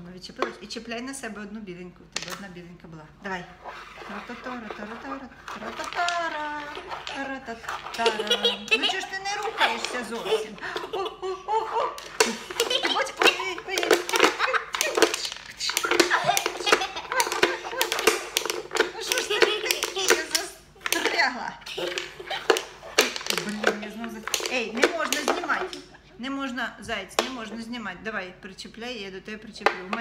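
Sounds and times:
voices: 0.0 - 30.0
ball and strikers clicking on board: 4.1 - 10.6, 11.9 - 25.9, 27.1 - 27.5, 29.6 - 30.0
laughter: 8.0 - 13.0, 16.0 - 18.1.

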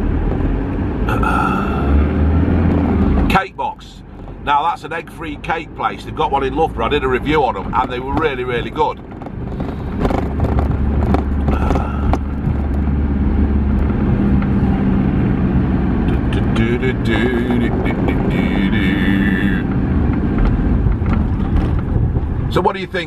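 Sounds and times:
vehicle engine and road noise: 0.0 - 23.0.

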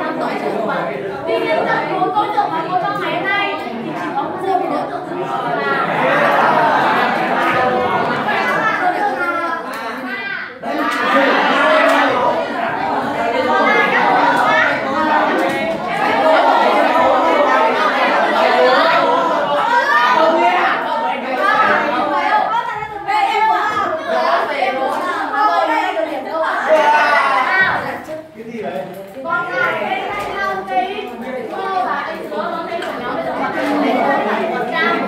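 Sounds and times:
students chattering: 0.0 - 35.0.

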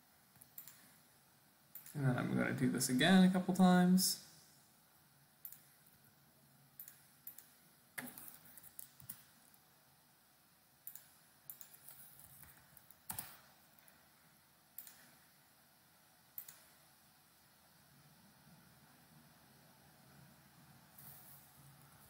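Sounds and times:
computer mouse and keyboard clicks: 0.3 - 1.0, 5.4 - 5.8, 6.8 - 9.4, 10.8 - 14.0, 14.8 - 15.2, 16.3 - 16.8.

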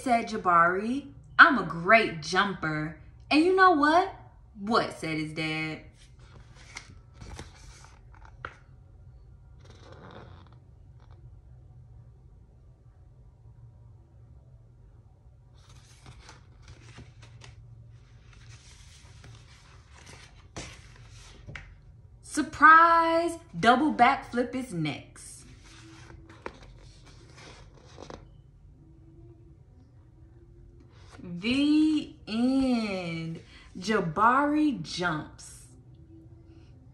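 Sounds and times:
paper rustling: 6.0 - 8.6, 15.6 - 21.7, 25.4 - 28.3.

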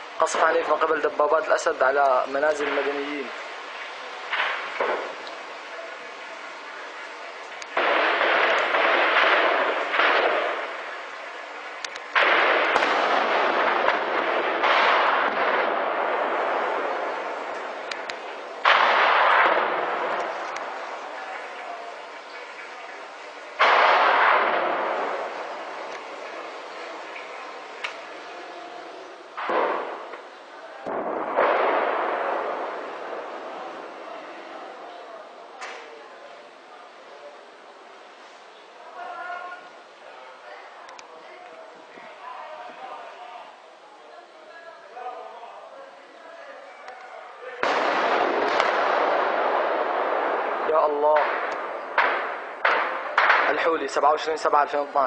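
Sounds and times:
tank shelling booms: 0.2 - 5.3, 7.7 - 28.3, 29.3 - 34.2, 47.6 - 54.7.

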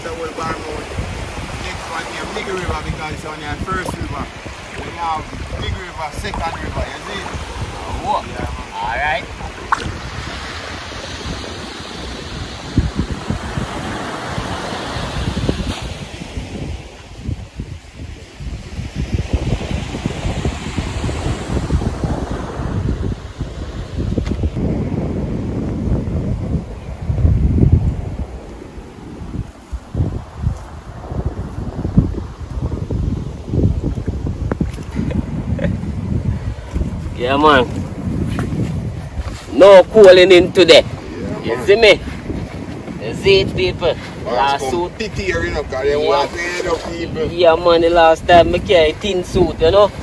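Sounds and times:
wind gusting across microphone: 0.0 - 50.0.

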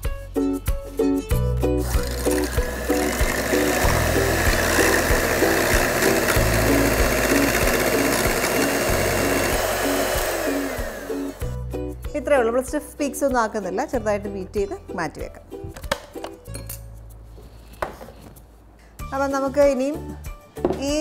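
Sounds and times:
background music: 0.0 - 21.0
electric hand mixer whirring: 1.8 - 11.6.

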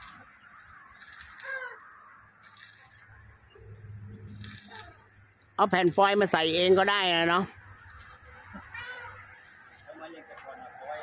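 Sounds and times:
faint bird calls: 0.0 - 2.2.

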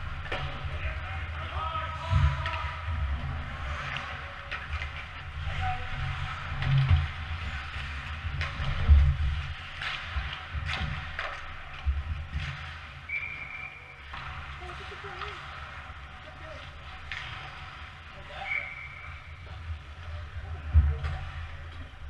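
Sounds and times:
low rink rumble with thumps: 0.0 - 18.3, 19.0 - 22.0
skates on ice: 0.0 - 22.0
hockey sticks clacking: 3.6 - 14.5.

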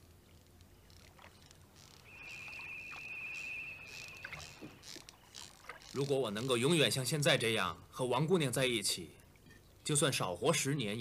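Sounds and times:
water lapping from poled boat: 0.0 - 10.6
high pulsing trill: 2.0 - 5.1.

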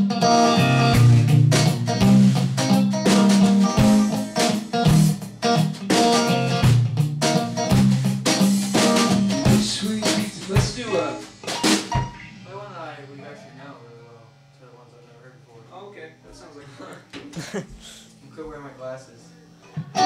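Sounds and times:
electric guitar: 0.0 - 12.5, 19.6 - 20.0
drum hits: 1.0 - 12.4
person speaking: 16.6 - 18.2.

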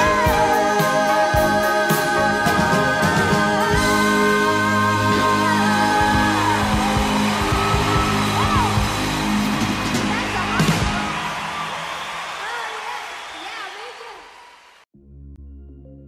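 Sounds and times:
person singing: 0.0 - 8.4
country gospel song: 0.0 - 9.6.

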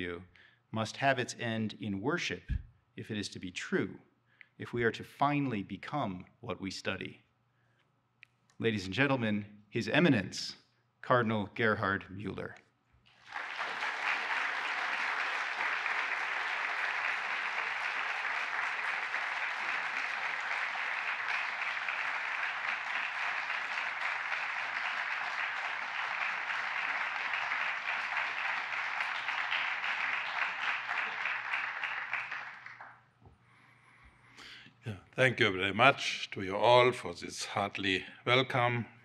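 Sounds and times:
audience applauding: 13.1 - 33.0.

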